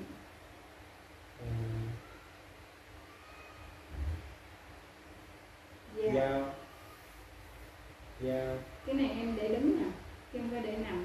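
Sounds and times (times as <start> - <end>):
person humming a held note: 1.4 - 2.0.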